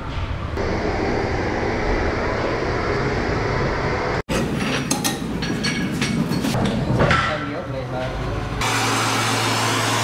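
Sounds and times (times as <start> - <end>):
foundry noise: 3.8 - 7.7
metal knocks and clanks: 4.4 - 7.7.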